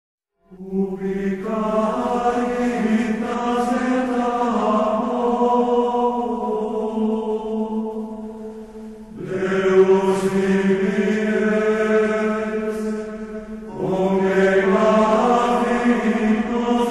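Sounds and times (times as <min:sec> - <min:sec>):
religious chant singing: 0:00.5 - 0:16.9.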